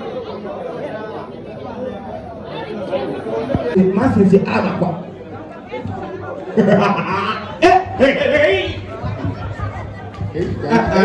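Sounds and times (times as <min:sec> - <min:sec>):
crowd chatter: 0:00.0 - 0:11.0
person speaking loudly: 0:07.0 - 0:08.9.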